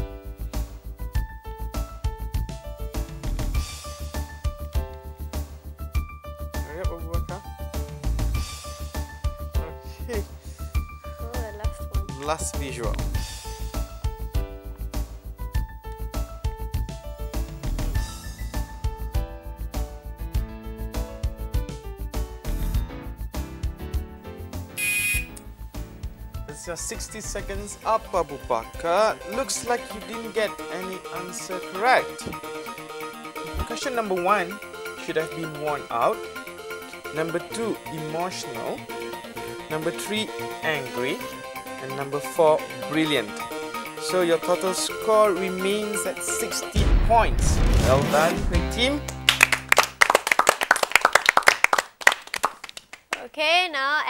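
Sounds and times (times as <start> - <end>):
game show timer music: 24.7 - 25.4, 26.7 - 41.6
electronic buzzer: 24.8 - 25.4
people clapping: 48.3 - 53.4.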